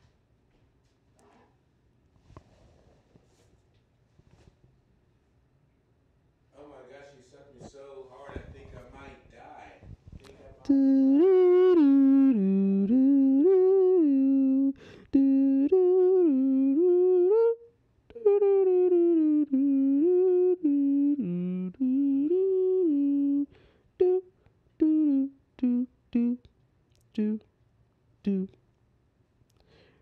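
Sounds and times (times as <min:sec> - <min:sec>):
person humming a slow tune: 0:10.6 - 0:27.5, 0:28.2 - 0:28.6.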